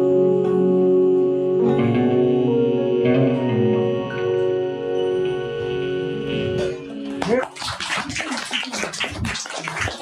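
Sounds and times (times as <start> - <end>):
keyboard and electric guitar chord: 0.0 - 7.2
audience applause: 7.0 - 10.0.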